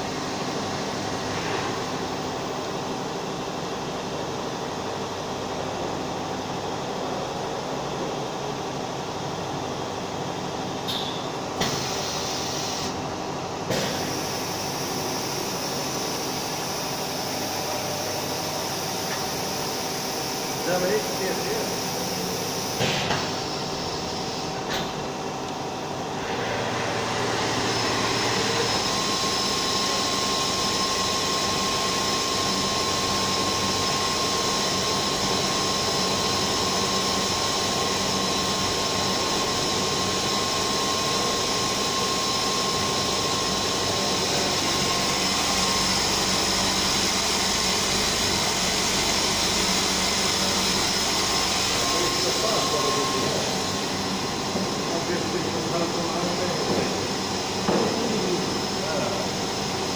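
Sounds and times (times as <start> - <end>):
faint high whine: 51.6 - 56.5.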